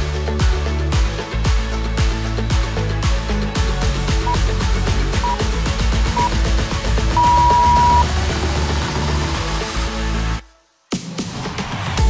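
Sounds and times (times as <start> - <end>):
electronic background music: 0.0 - 12.0
interval timer long beep: 7.2 - 8.1.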